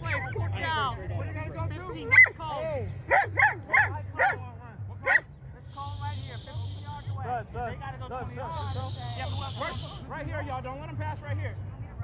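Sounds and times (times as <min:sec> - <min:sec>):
dog barking: 0:02.1 - 0:02.4, 0:03.1 - 0:04.4, 0:05.0 - 0:05.3.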